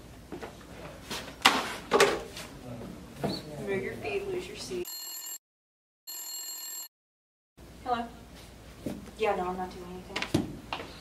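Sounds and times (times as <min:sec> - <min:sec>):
phone ringtone: 0:04.8 - 0:05.4, 0:06.1 - 0:06.9.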